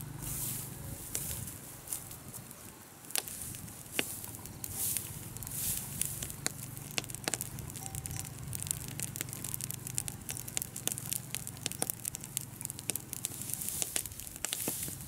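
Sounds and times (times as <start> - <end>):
low steady hum: 0.0 - 15.0
straw fire crackling and popping: 0.0 - 15.0.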